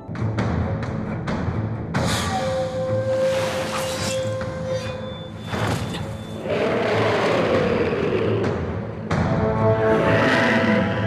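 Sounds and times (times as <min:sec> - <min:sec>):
monster roaring: 0:06.4 - 0:08.8, 0:09.9 - 0:11.0.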